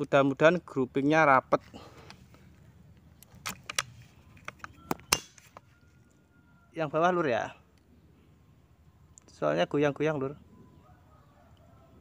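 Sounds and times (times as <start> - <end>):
metallic rifle clicks: 3.2 - 5.7.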